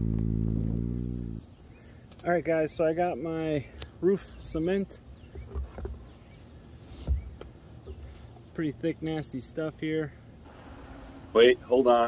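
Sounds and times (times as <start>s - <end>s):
high insect buzz: 0.0s - 4.9s.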